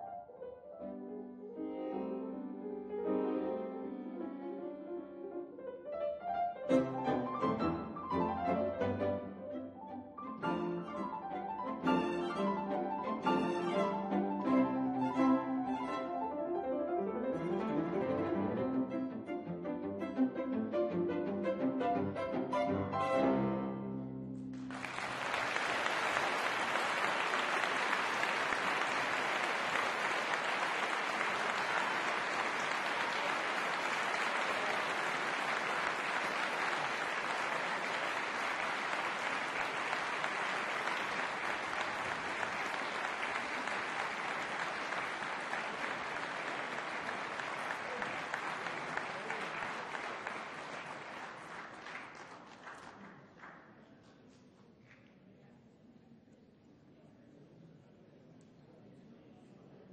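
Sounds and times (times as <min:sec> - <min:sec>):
piano trio music: 0:00.0 - 0:24.5
audience applauding: 0:10.3 - 0:16.2, 0:24.5 - 0:53.7.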